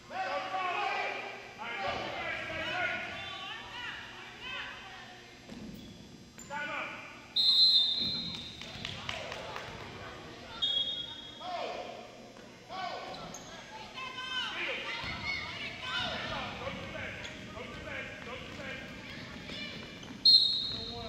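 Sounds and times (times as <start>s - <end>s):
referee's whistle blast: 7.4s - 8.6s, 20.2s - 21.0s
voices echoing in hall: 8.3s - 21.0s.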